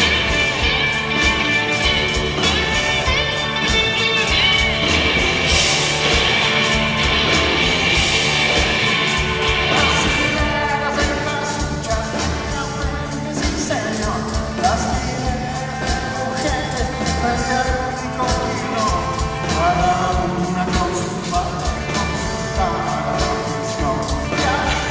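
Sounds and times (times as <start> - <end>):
drums: 0.0 - 24.9
electric guitars: 0.0 - 24.9
keyboard: 0.0 - 24.9
man singing lead: 8.1 - 24.9.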